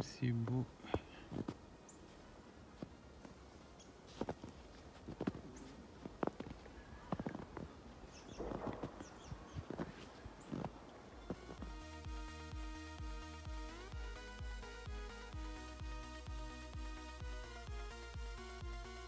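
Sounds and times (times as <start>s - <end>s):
footsteps crunching on snow: 0.8s - 11.9s
electronic music with thumping beat: 11.3s - 19.0s.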